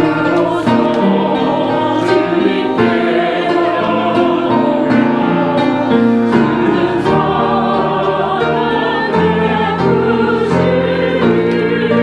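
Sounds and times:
church choir singing: 0:00.0 - 0:12.0
piano accompaniment: 0:00.0 - 0:12.0.

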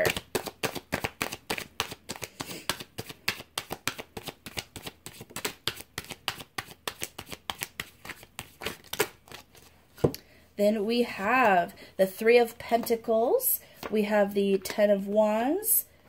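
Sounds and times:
cards being shuffled: 0:00.0 - 0:10.1.

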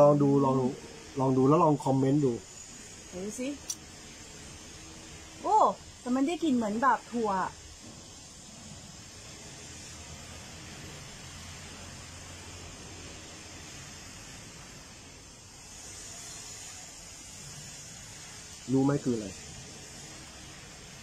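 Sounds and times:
background hiss: 0:00.0 - 0:21.0.

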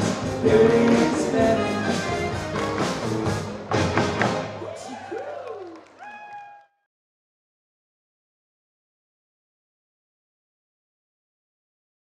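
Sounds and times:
live country band playing: 0:00.0 - 0:04.7.

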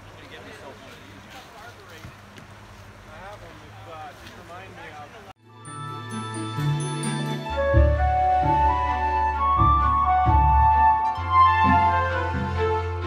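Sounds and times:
music: 0:05.4 - 0:13.0.

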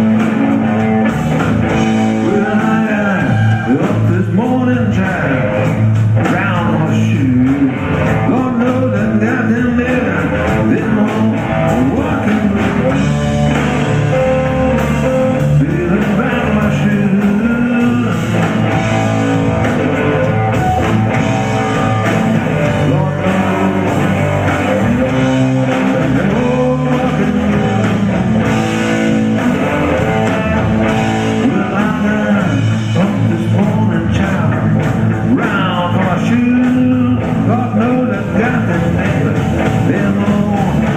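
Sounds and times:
blues-rock band playing: 0:00.0 - 0:40.9
electric guitar: 0:00.0 - 0:40.9.

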